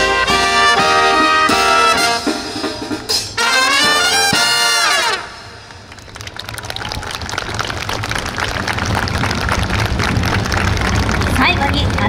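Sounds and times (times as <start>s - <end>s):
brass band final chord: 0.0s - 5.6s
audience applause: 5.7s - 12.0s
low rumble: 5.8s - 12.0s.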